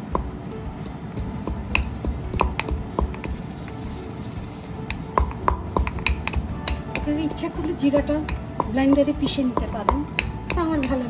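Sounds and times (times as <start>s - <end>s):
pestle knocking in stone mortar: 0.0s - 3.9s, 4.8s - 11.0s
pestle grinding in mortar: 0.0s - 11.0s.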